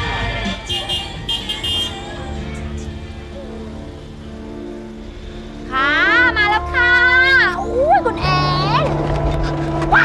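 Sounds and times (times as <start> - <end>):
car engine droning: 0.0 - 10.0.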